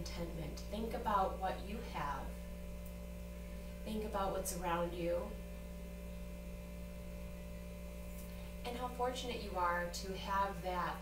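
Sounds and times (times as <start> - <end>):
woman speaking: 0.0 - 2.4, 3.8 - 5.4, 8.6 - 11.0
low electrical hum: 0.0 - 11.0.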